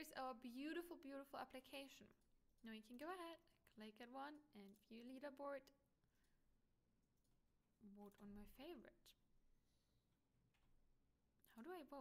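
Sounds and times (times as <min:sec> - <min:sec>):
woman's voice: 0:00.0 - 0:05.8, 0:07.8 - 0:09.2, 0:11.5 - 0:12.0.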